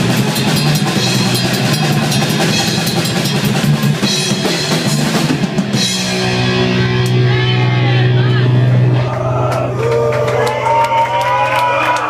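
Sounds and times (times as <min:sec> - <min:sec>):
rapid drumming: 0:00.0 - 0:07.6
heavy metal band playing: 0:00.0 - 0:10.6.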